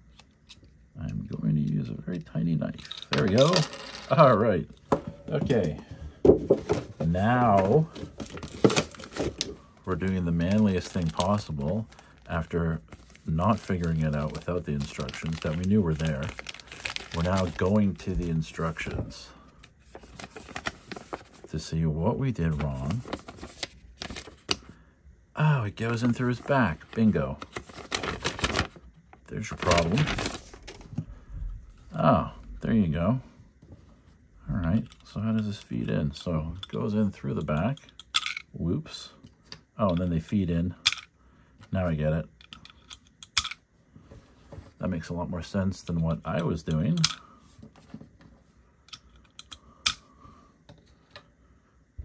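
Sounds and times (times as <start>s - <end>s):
paper rustling and crinkling: 5.3s - 21.6s, 22.4s - 24.6s, 25.9s - 31.0s.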